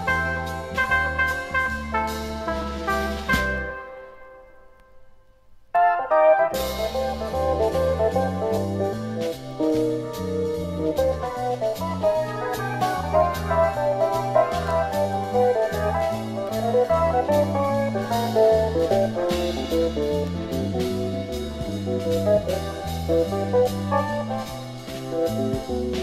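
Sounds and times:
steady drum beat: 0.0 - 3.8, 6.6 - 26.0
electronic organ jazz: 0.0 - 4.6, 5.7 - 26.0.

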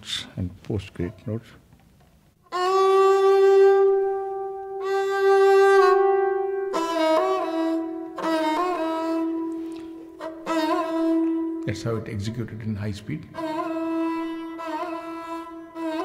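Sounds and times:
bowed string solo: 2.5 - 16.0.

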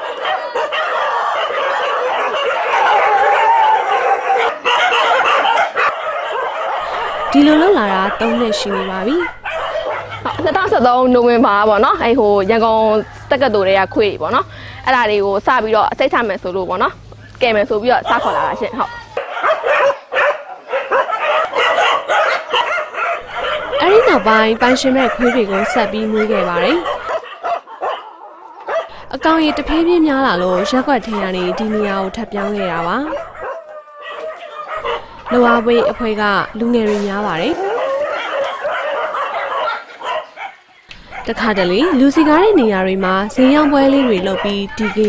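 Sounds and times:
dog whining: 0.0 - 10.5, 18.0 - 36.4
many dogs barking: 0.0 - 14.4, 17.6 - 45.0
woman speaking: 6.8 - 9.4, 10.2 - 19.1, 23.6 - 27.1, 28.9 - 33.2, 34.8 - 37.8, 40.9 - 45.0.

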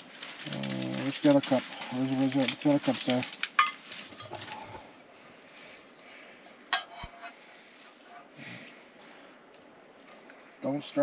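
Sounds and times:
metal mugs handled: 2.3 - 7.4.

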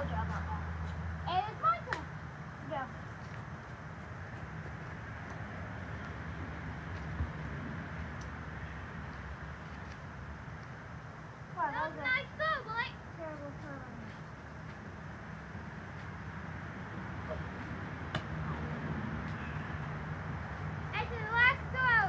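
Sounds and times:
outdoor background noise: 0.0 - 22.0.

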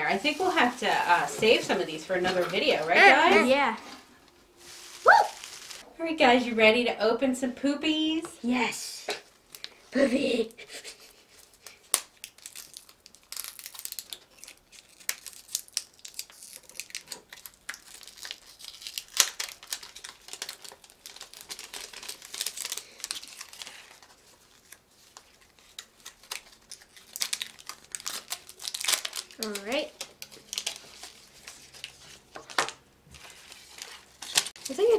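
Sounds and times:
plastic wrapping crinkling and tearing: 0.0 - 3.5, 4.6 - 5.8, 9.5 - 10.1, 11.0 - 34.9.

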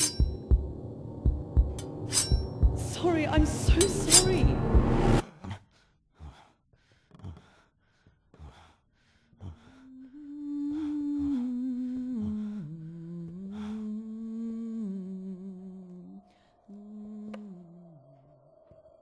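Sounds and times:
person humming a low tune: 9.4 - 18.7.

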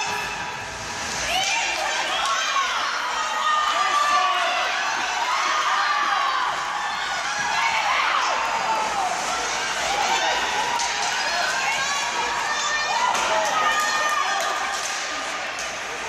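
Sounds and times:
spectators shouting and cheering: 0.0 - 16.0.

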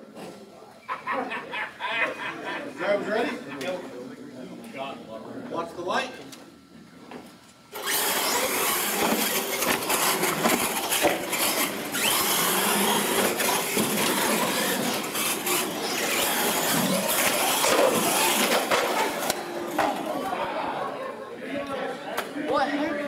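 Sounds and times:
toy trucks racing: 7.7 - 20.4.

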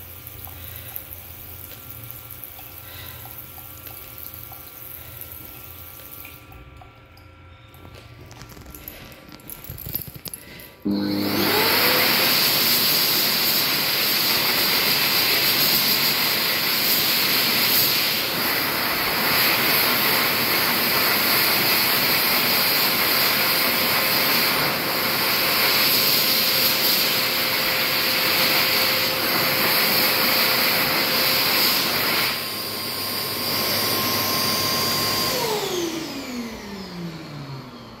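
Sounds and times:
hand dryer rushing air: 10.4 - 38.0
motor winding down whine: 32.3 - 38.0.

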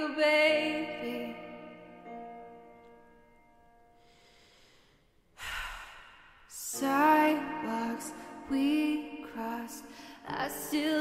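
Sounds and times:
singer inhaling: 4.0 - 6.4.

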